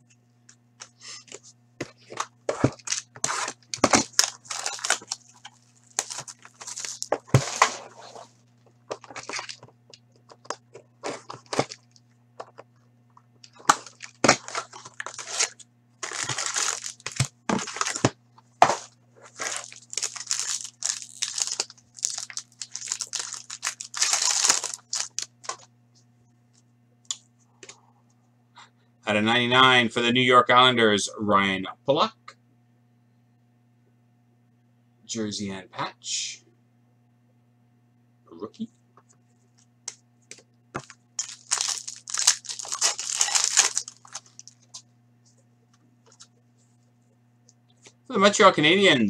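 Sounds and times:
faint steady hum: 0.0 - 49.0
wrapper and cardboard tearing: 2.6 - 8.3, 8.9 - 9.7, 11.0 - 12.0, 13.5 - 25.7, 40.8 - 44.8.

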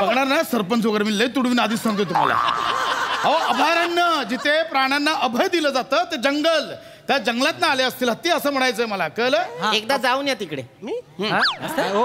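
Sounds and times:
laughter: 1.5 - 5.1, 11.6 - 12.0.

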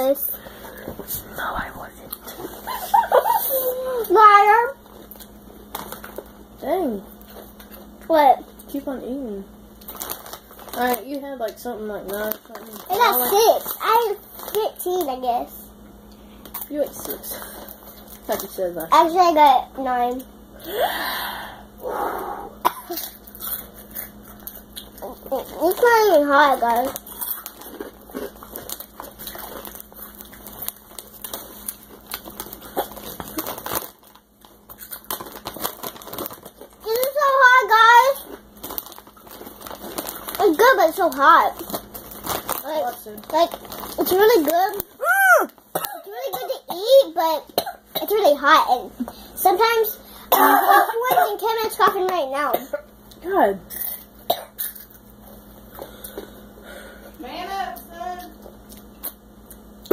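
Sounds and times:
snack bag crinkling: 1.9 - 6.4, 9.8 - 15.2, 16.4 - 19.1, 22.9 - 46.4
crunching snacks: 9.8 - 11.0, 22.9 - 45.8
soft throat sounds: 20.7 - 22.9
child coughing: 22.5 - 23.2, 45.7 - 48.3, 50.3 - 51.5, 54.3 - 54.8.

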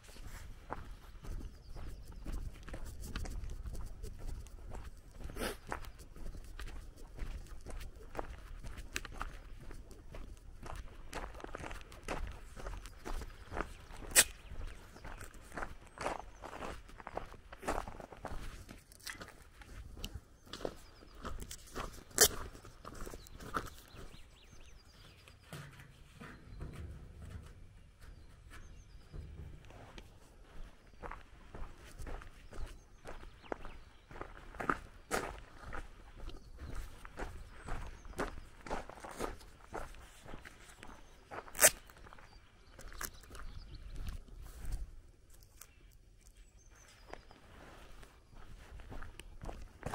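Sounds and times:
footsteps on gravel: 0.0 - 45.8, 46.8 - 49.9.

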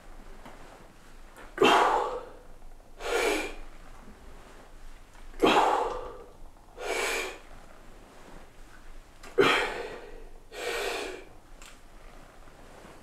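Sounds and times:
man breathing forcefully: 1.6 - 3.7, 5.4 - 7.4, 9.4 - 11.3.

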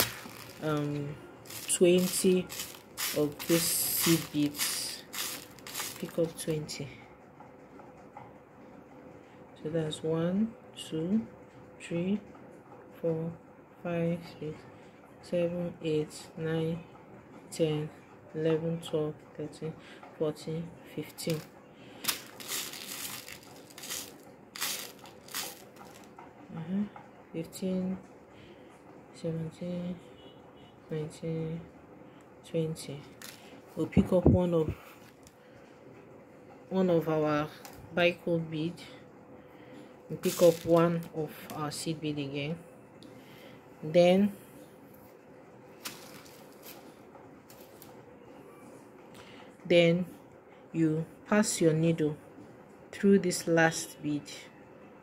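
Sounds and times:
beads rattling in plastic tub: 0.0 - 6.5, 21.2 - 26.1, 33.2 - 33.4, 40.2 - 41.1, 45.8 - 46.8.

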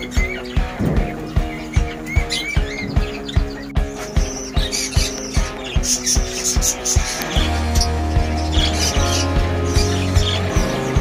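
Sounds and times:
high bird chirps: 0.0 - 11.0
music with steady beat: 0.0 - 11.0.

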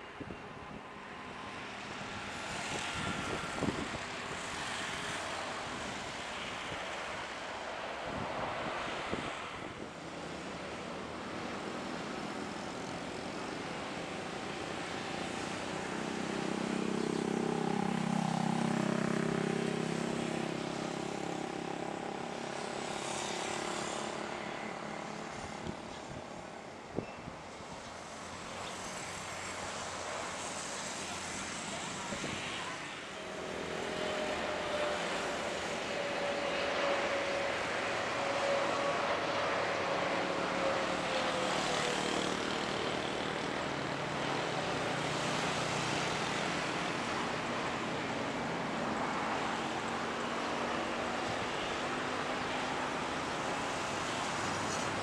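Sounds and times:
jet engine noise: 0.0 - 55.0.

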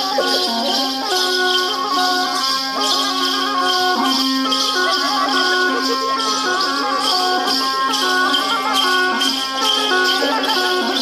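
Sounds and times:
rattles shaking: 0.0 - 11.0
reedy wind instrument melody: 0.0 - 11.0.

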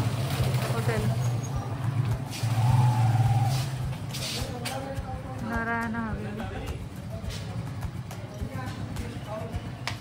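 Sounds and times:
vehicle engine humming: 0.0 - 10.0
short hiss: 3.5 - 4.5.

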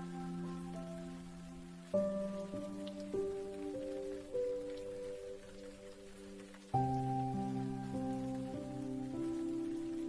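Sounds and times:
rain pattering: 0.0 - 10.0
soft piano melody: 0.0 - 10.0.

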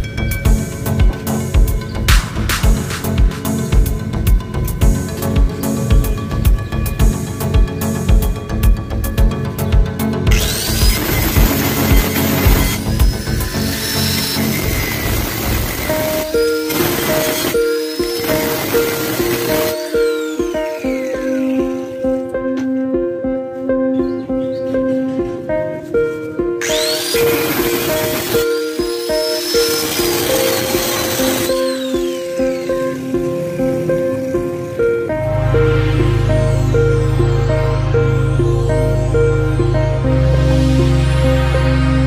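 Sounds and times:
background music: 0.0 - 42.0
angle grinder grinding steel: 10.3 - 22.3, 26.6 - 35.0.

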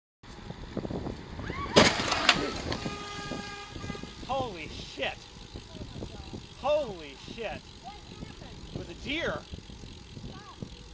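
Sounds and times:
road and wind noise: 0.2 - 10.9
car horn: 2.2 - 4.6.

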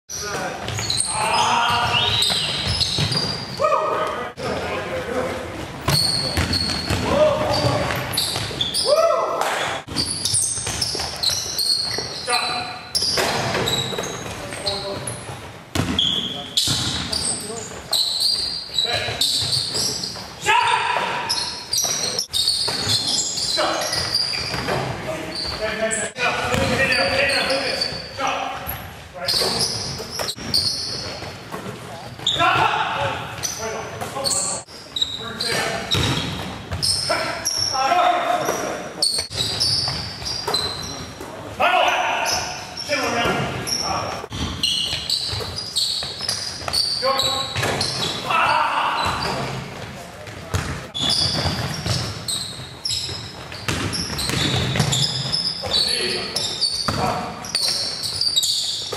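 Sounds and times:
players calling out: 0.1 - 15.2, 36.8 - 49.7
sneakers squeaking: 0.1 - 58.9
basketball bouncing on wooden floor: 1.7 - 3.3, 5.8 - 8.7, 9.9 - 12.1, 13.0 - 17.2, 26.4 - 26.8, 35.9 - 37.0, 44.3 - 48.2, 49.0 - 55.8.

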